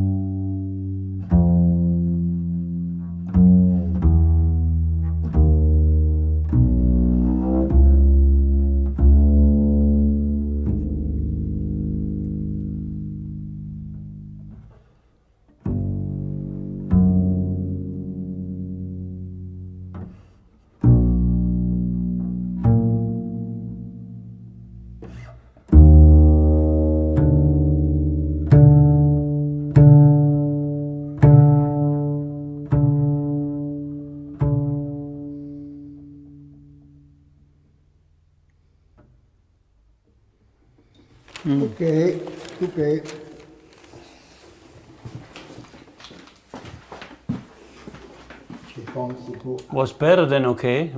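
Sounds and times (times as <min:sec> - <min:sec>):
double bass plucked: 0:00.0 - 0:40.8.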